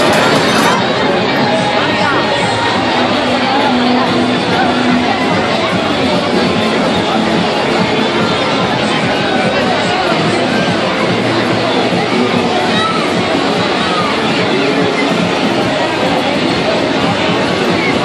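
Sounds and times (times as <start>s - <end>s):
crowd talking: 0.0s - 18.0s
music playing: 0.0s - 18.0s.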